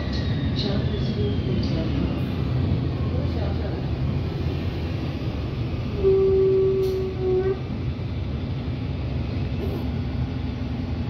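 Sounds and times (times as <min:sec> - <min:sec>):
bus engine drone: 0:00.0 - 0:11.0.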